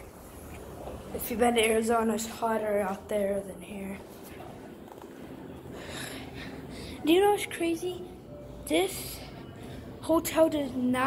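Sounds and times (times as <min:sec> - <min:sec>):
low background noise: 0:00.0 - 0:11.0.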